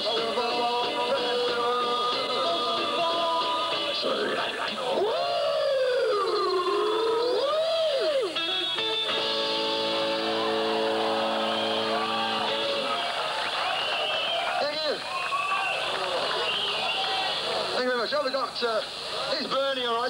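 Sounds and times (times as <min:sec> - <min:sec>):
electric guitar bending notes: 0:06.8 - 0:13.3
ringing guitar chord: 0:08.4 - 0:12.9.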